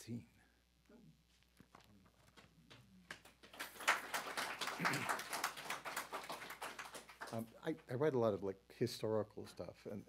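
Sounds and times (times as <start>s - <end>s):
audience applauding: 2.7s - 7.6s.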